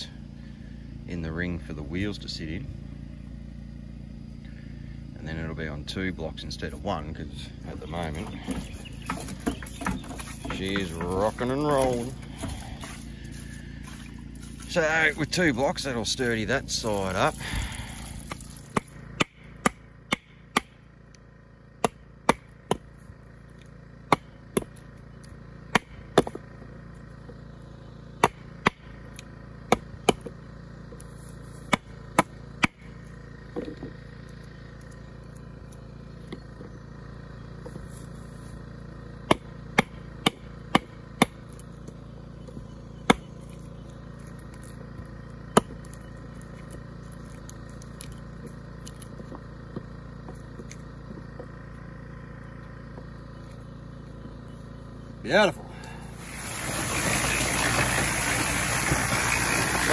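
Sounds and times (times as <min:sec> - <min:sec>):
steady low hum: 0:00.0 - 0:59.9
hatchet chopping wood: 0:08.0 - 0:14.7, 0:17.4 - 0:36.7, 0:39.0 - 0:53.2.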